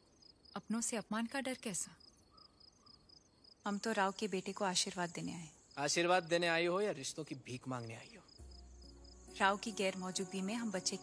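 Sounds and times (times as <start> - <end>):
crickets chirping: 0.0 - 11.0
woman speaking: 0.6 - 2.0, 3.7 - 5.6, 9.4 - 11.0.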